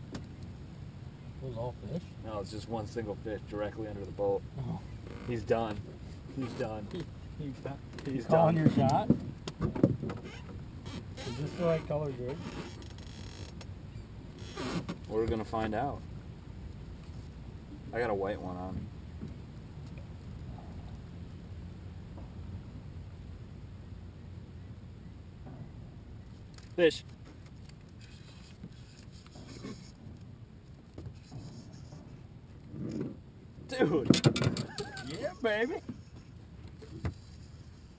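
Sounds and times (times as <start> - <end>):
fishing reel creaking: 12.4 - 13.6, 27.6 - 30.0
steady low rumble: 15.0 - 28.0.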